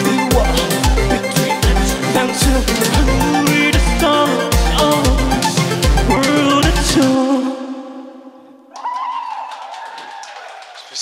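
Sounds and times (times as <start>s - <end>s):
synthpop song: 0.0s - 8.7s
audience applauding and cheering: 8.7s - 11.0s.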